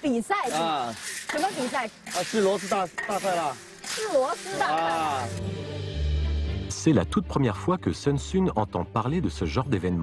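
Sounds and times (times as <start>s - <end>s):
people talking: 0.0s - 5.3s
snails stir-frying in a wok: 0.0s - 5.4s.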